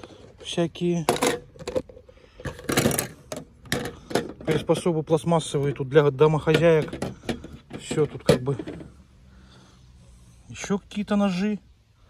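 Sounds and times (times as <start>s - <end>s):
plastic parts clicking and knocking: 0.0s - 9.0s.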